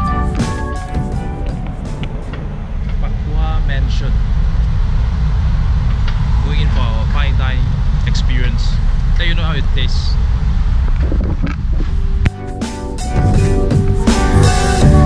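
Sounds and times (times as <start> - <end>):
background music: 0.0 - 2.8, 12.3 - 15.0
low outdoor rumble: 0.0 - 15.0.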